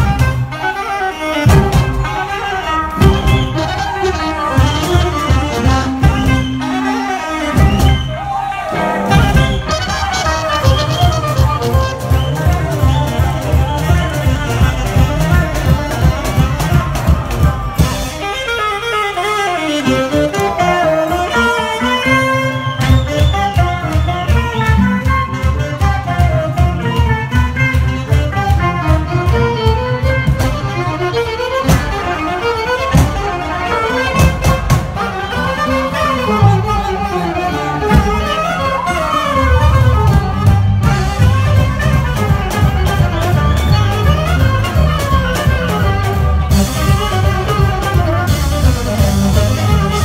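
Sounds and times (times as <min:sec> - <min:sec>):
double bass: 0:00.0 - 0:50.0
drums keeping a steady beat: 0:00.0 - 0:50.0
electric guitar: 0:00.0 - 0:50.0
saxophone: 0:00.0 - 0:50.0
violin: 0:13.2 - 0:50.0.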